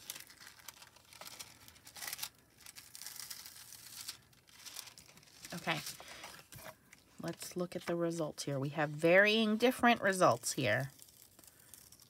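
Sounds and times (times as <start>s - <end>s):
metallic foil crinkling and peeling: 0.0s - 7.6s, 9.2s - 12.0s.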